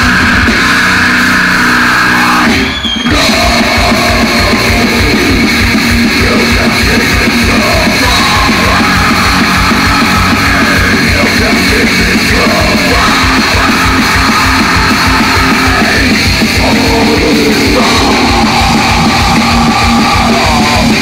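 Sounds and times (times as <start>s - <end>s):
bass guitar: 0.0s - 21.0s
distorted electric guitars: 0.0s - 21.0s
fast drumming: 0.0s - 21.0s.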